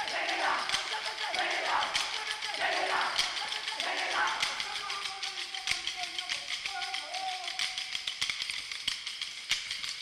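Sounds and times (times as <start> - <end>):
wooden sticks clacking: 0.0 - 10.0.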